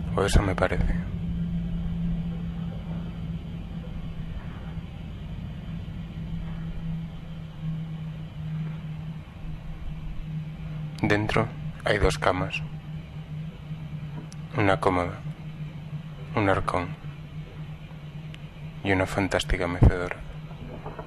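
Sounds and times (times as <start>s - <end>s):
low rumble: 0.0s - 21.0s
steady low hum: 0.0s - 21.0s.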